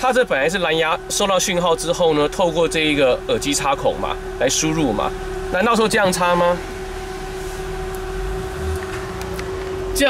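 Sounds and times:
low rumble: 6.7 - 10.0.

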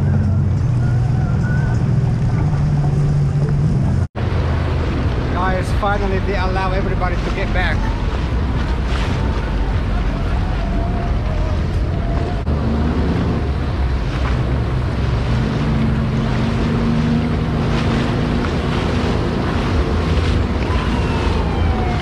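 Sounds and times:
churning water: 0.0 - 22.0
watercraft engine running: 0.0 - 22.0
wind buffeting microphone: 0.0 - 22.0.

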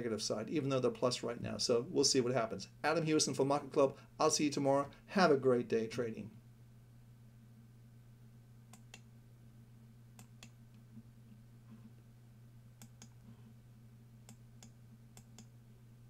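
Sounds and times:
low steady hum: 0.0 - 16.0
computer mouse clicking: 8.7 - 9.1, 10.2 - 10.8, 12.8 - 13.2, 14.2 - 15.5.

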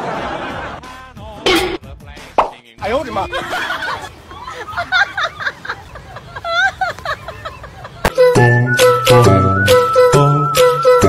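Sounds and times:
sharp pop: 2.4 - 2.6.

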